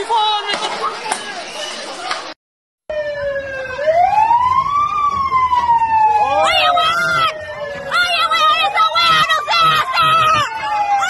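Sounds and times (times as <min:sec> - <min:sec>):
police siren wailing: 0:02.9 - 0:11.0.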